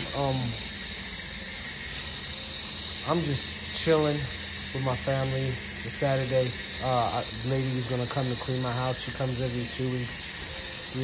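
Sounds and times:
hose spray on wet concrete: 0:00.0 - 0:11.0.

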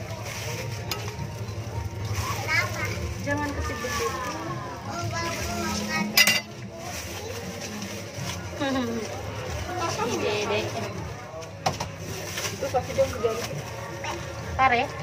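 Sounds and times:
utensils scraping and clinking dishes: 0:00.0 - 0:08.9
faint voices: 0:00.0 - 0:15.0.

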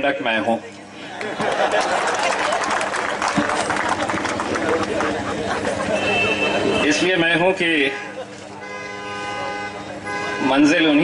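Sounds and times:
vehicle horn long note: 0:05.9 - 0:07.1, 0:07.7 - 0:10.9.

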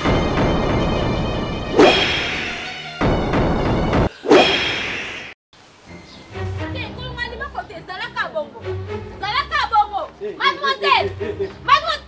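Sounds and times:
whip-like whoosh: 0:01.7 - 0:02.7, 0:04.3 - 0:05.4.

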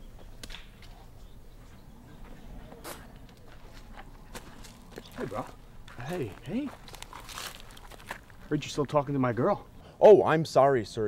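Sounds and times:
soft footsteps outdoors: 0:00.0 - 0:09.8
low steady hiss: 0:03.0 - 0:11.0.

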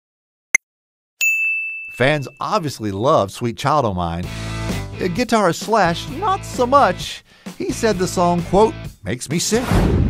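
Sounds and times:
bell-like ding chime: 0:01.2 - 0:02.5.

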